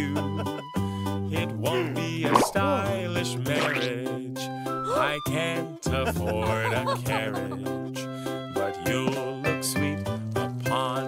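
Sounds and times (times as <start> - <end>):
upbeat children's song: 1.3 - 11.0
cartoon cork pop: 2.2 - 4.0.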